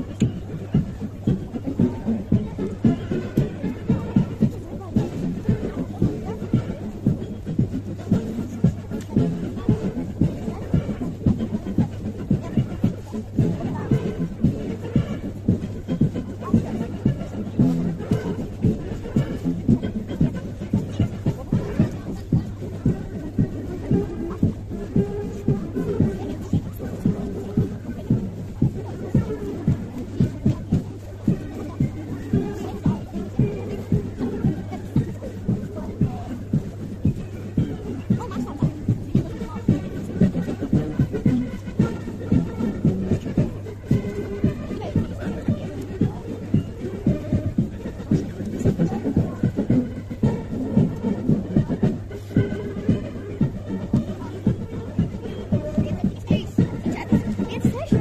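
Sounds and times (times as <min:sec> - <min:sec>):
military march music: 0:00.0 - 0:58.0.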